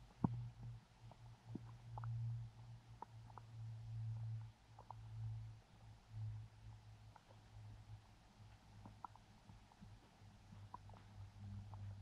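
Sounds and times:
faint low rumble: 0.0 - 12.0.

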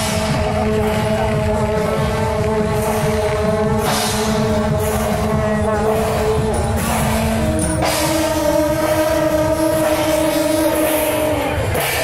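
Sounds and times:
long brass horns droning: 0.0 - 12.0.

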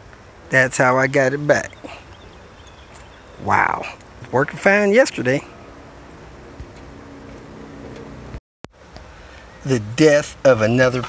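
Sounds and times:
low background noise with hum: 0.0 - 11.0.

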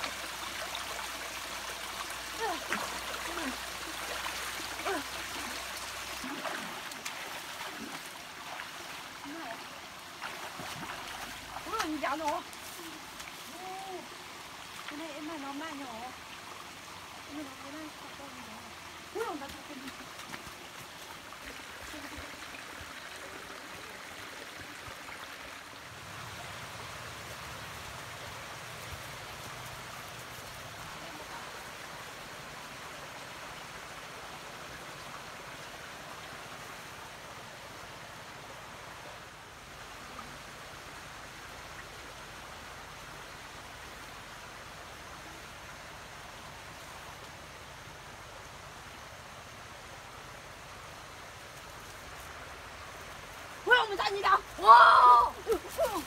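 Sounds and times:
stream flowing: 0.0 - 56.0.

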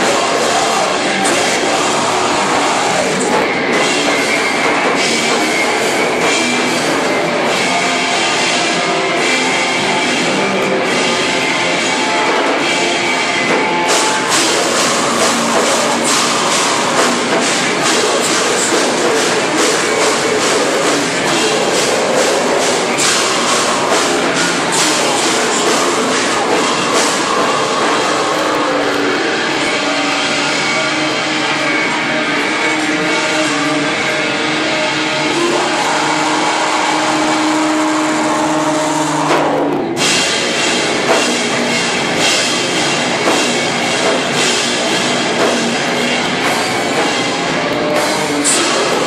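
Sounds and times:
amplifier noise: 0.0 - 49.0
distorted electric guitar chord: 0.0 - 49.0
live rock band playing: 0.0 - 49.0
steady held tones: 0.0 - 49.0.

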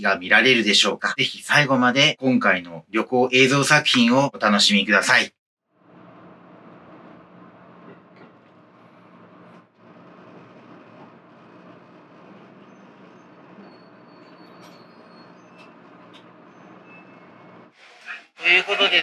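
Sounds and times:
faint high brake squeals: 12.6 - 17.7.

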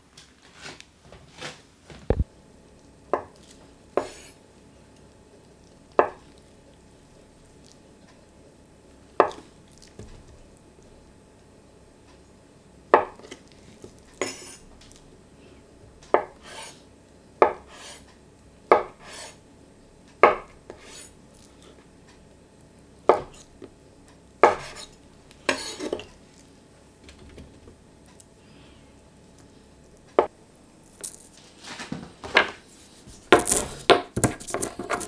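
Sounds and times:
knife cutting tofu: 3.2 - 4.4, 18.7 - 19.4, 24.4 - 26.1
knife blade scraping: 14.2 - 14.6, 16.4 - 16.8, 17.7 - 18.1, 19.0 - 19.4, 20.7 - 21.1, 24.5 - 26.1.

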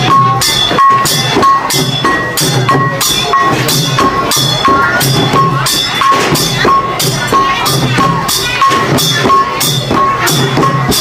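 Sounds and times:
drums beaten in rhythm: 0.0 - 11.0.

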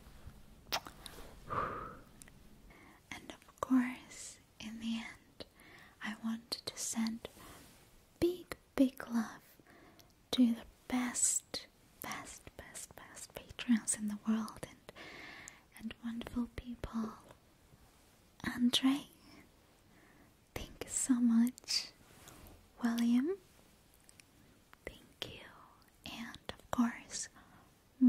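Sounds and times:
small sharp mouth clicks: 0.7 - 1.2
woman whispering: 3.0 - 7.3, 8.2 - 9.6, 10.3 - 15.0, 15.7 - 17.4, 18.4 - 19.5, 20.5 - 22.0, 22.8 - 23.4, 24.8 - 27.7.

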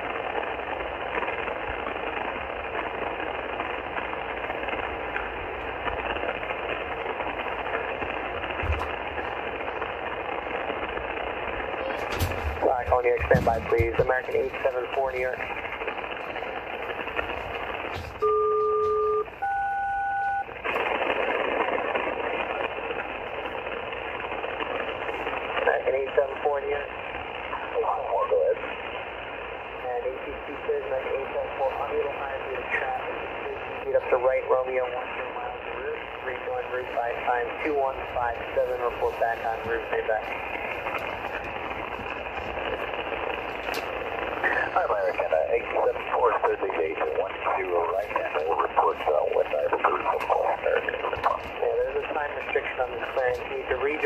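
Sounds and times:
faint garbled radio voices: 0.0 - 19.0, 20.5 - 54.0
two-tone radio call: 11.7 - 16.0, 25.5 - 28.7, 29.8 - 42.0, 44.1 - 54.0.

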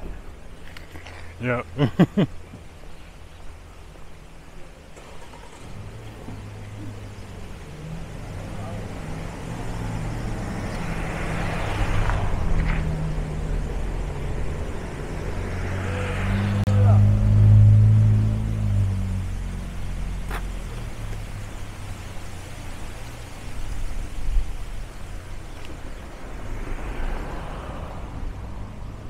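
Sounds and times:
vehicle with deep engine hum passing: 4.5 - 29.0
van driving past: 4.9 - 23.6.

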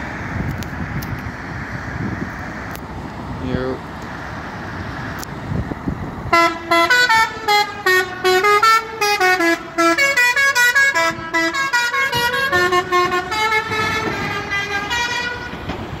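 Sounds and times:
truck driving away: 0.0 - 16.0
musical air horn tune: 6.3 - 15.6.

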